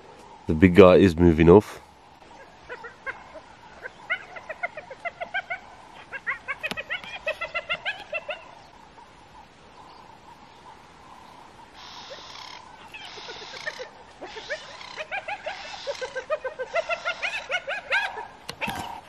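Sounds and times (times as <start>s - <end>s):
short pitched animal calls: 11.7s - 16.2s.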